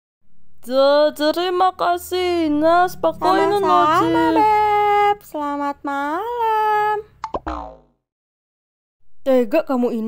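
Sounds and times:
downward-sliding tone: 2.3s - 5.1s
cartoon pops: 7.2s - 7.9s.

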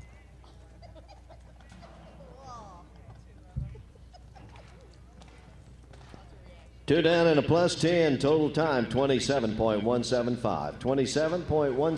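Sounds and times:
announcer speaking: 6.9s - 11.9s.

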